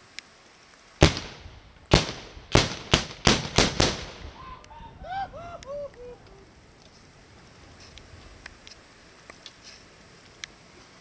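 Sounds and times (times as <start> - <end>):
gunshots with echo: 1.0 - 4.4.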